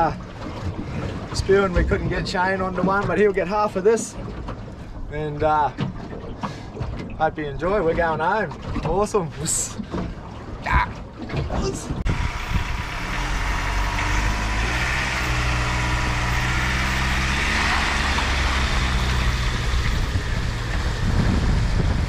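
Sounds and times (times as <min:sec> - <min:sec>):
truck engine running at low revs: 0:12.0 - 0:22.0.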